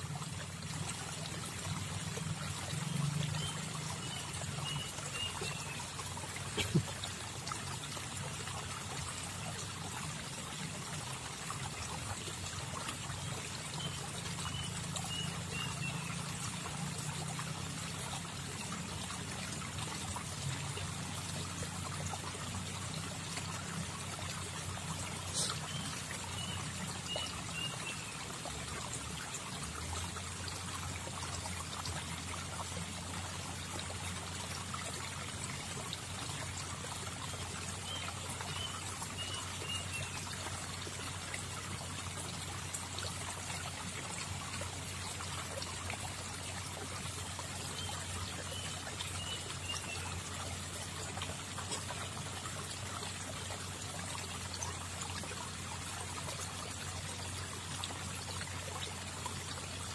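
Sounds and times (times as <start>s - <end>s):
river water flowing: 0.0s - 59.9s.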